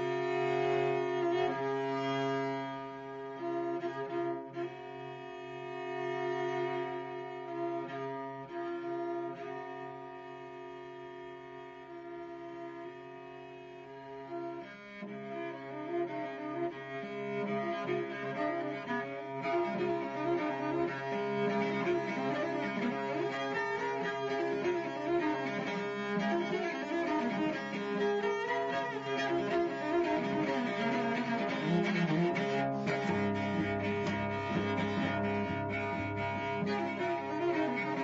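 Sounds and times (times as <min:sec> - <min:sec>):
bowed cello: 0:00.0 - 0:38.0.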